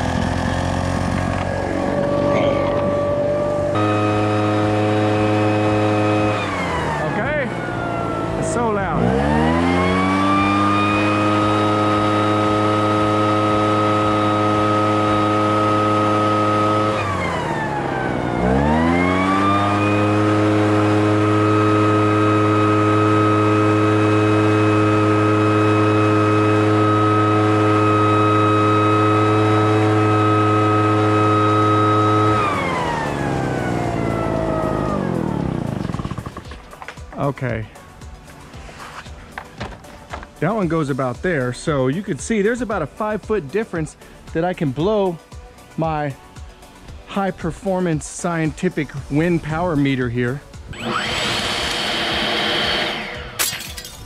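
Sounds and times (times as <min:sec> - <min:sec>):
leaf blower engine revving: 0:00.0 - 0:37.3, 0:50.6 - 0:53.5.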